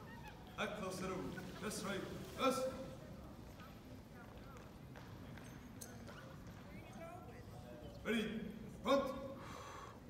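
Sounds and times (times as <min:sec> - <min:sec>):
distant chatter in a hall: 0:00.0 - 0:10.0.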